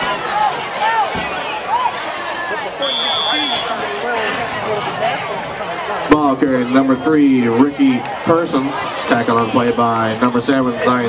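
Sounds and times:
crowd voices and shouting: 0.0 - 11.0
referee's whistle: 2.8 - 3.9.

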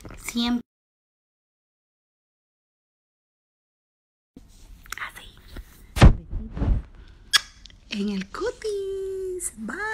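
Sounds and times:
faint whispering: 5.0 - 5.6.

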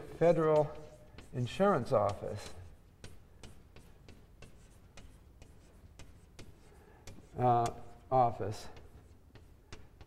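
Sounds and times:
chalk scratching on blackboard: 0.0 - 10.0
chalk tapping on blackboard: 0.0 - 10.0.

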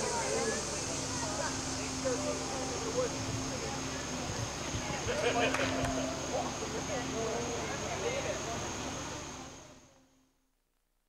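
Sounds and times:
murmur of party voices: 0.0 - 10.0
faint steady high whine: 0.0 - 11.0.

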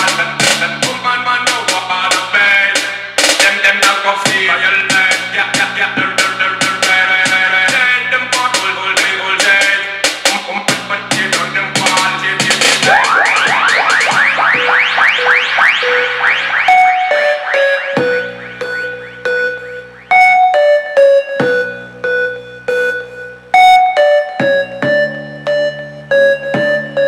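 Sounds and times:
electronic music through speaker: 0.0 - 27.0.

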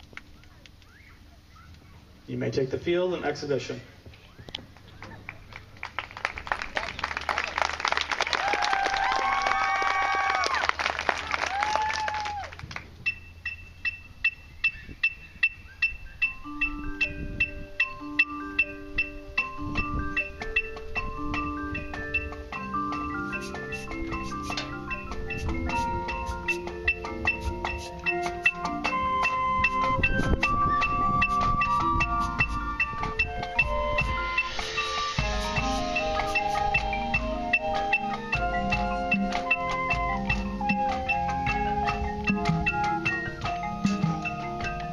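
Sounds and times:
mallet percussion melody: 11.5 - 44.9
marimbas and vibraphone playing: 13.0 - 44.9
hissing swell: 33.9 - 37.4.

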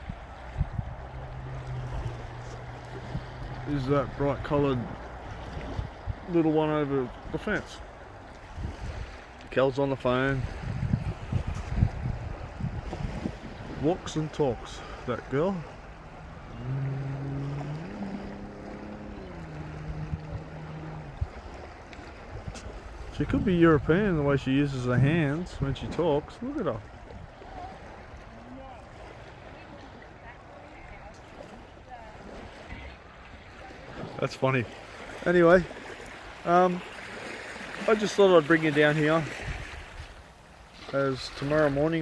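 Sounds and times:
low uneven rumbling: 0.0 - 8.3, 10.6 - 31.1
outdoor background noise: 0.0 - 42.0
motor engine humming: 0.3 - 6.3, 13.6 - 24.2
steady low hum: 14.8 - 22.5.

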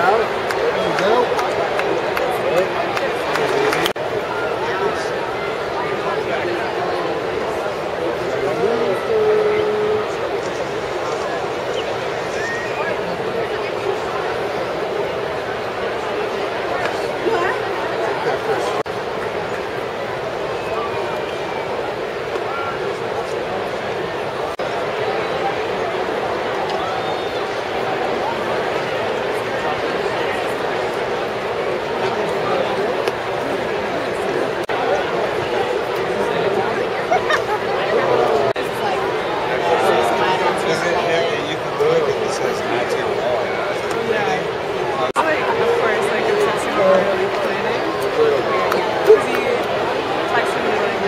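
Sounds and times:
crowd chattering: 0.0 - 51.0.

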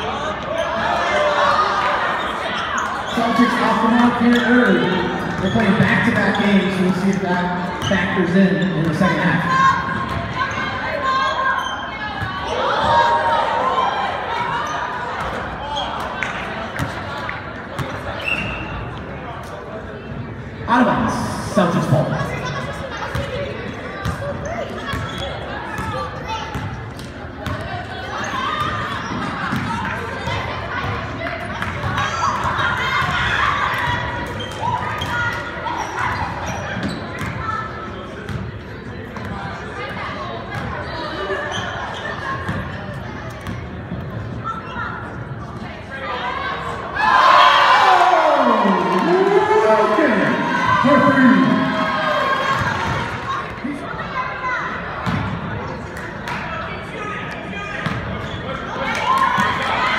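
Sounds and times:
murmur of voices: 0.0 - 59.9
people shouting and chattering: 0.0 - 59.9.

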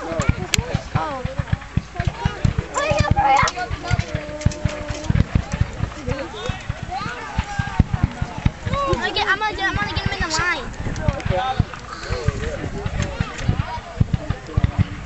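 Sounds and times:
horses galloping: 0.0 - 15.0.

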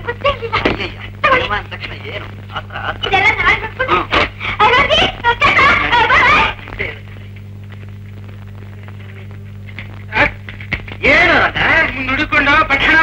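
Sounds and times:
low electrical hum: 0.0 - 13.0
person's voice: 11.0 - 13.0.

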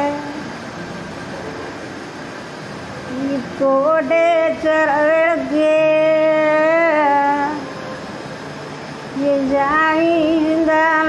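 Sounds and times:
elderly woman singing lullaby: 0.0 - 0.6, 3.1 - 7.7, 9.1 - 11.0.

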